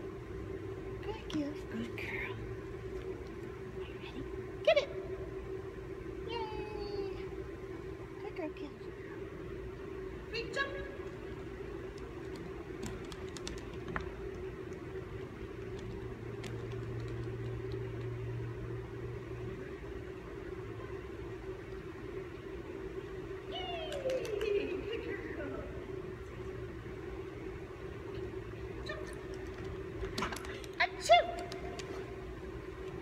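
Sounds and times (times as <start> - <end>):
steady room hum: 0.0 - 33.0.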